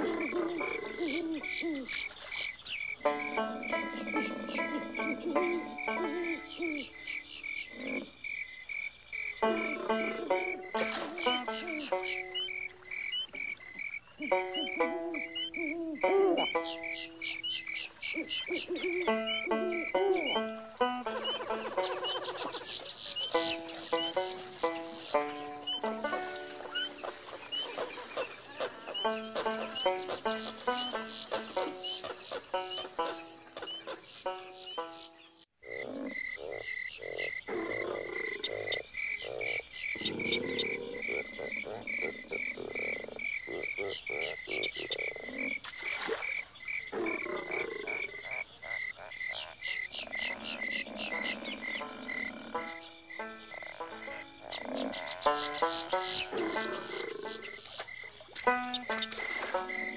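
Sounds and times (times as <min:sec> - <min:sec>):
frogs croaking: 0:00.0 - 0:59.9
insects chirping: 0:00.0 - 0:59.9
plucked-string tune: 0:03.0 - 0:06.6, 0:09.4 - 0:12.5, 0:19.0 - 0:22.0, 0:23.3 - 0:27.2, 0:58.4 - 0:59.9.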